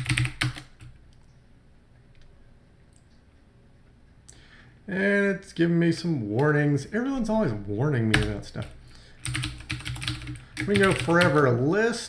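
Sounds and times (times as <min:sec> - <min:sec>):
computer keyboard typing: 0:00.0 - 0:00.9, 0:08.1 - 0:11.5.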